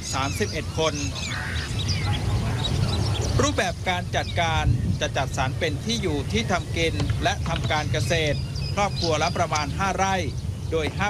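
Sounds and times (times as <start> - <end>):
crowd rumble: 0.6 - 11.0.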